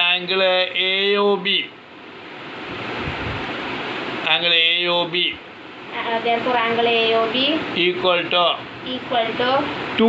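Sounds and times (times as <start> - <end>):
wind rushing on microphone: 2.6 - 3.7.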